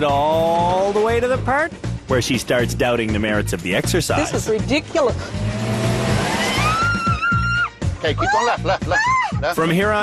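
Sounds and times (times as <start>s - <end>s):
vehicle engine running: 4.8s - 7.0s
woman screaming: 6.4s - 9.5s.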